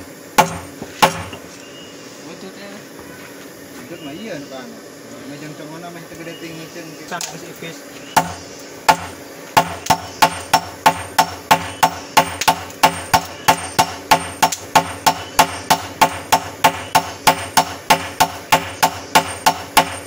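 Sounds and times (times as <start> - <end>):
hammer striking steel on anvil: 8.2 - 20.0.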